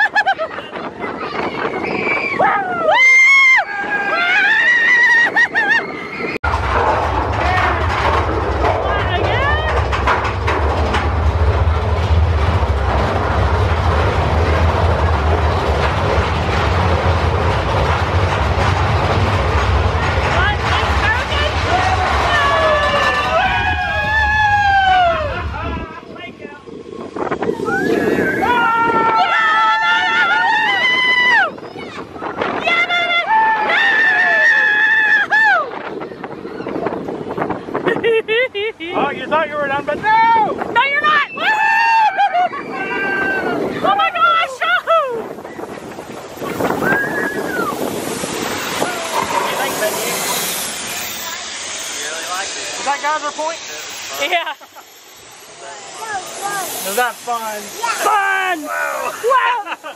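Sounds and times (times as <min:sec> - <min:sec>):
roller coaster rumble: 0:00.0 - 0:59.9
wind: 0:00.0 - 0:59.9
riders screaming: 0:01.3 - 0:06.4, 0:20.4 - 0:25.8, 0:27.5 - 0:35.9, 0:41.0 - 0:45.4, 0:46.3 - 0:50.8, 0:57.8 - 0:59.9
wheels clattering on track: 0:05.4 - 0:32.9, 0:39.1 - 0:58.7.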